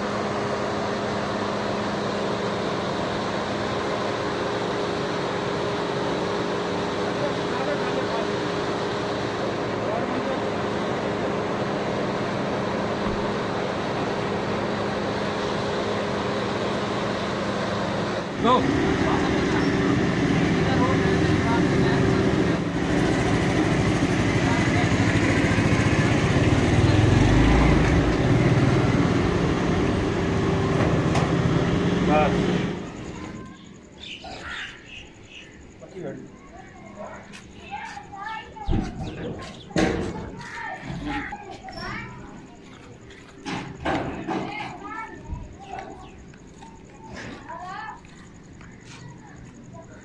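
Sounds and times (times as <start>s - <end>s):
engine idling: 0.0s - 34.2s.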